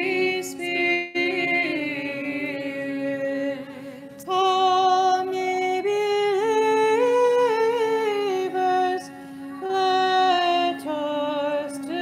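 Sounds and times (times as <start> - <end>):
woman singing a chant: 0.0 - 12.0.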